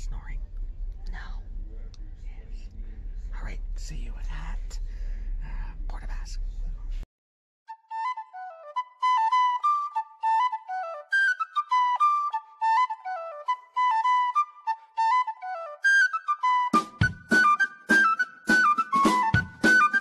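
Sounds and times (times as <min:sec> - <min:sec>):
ferry cabin low hum: 0:00.0 - 0:07.0
people whispering: 0:00.0 - 0:07.0
background music with flute melody: 0:07.7 - 0:20.0.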